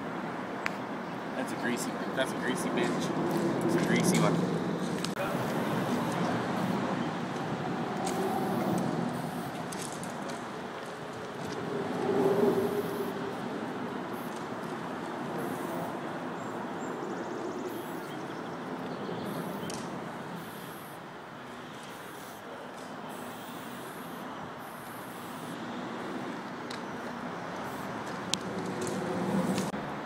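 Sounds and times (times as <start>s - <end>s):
passing traffic rumble: 0.0s - 30.0s.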